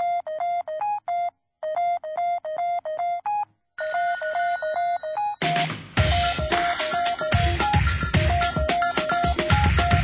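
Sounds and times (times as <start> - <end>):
electronic telephone ring beeps: 0.0 - 7.8.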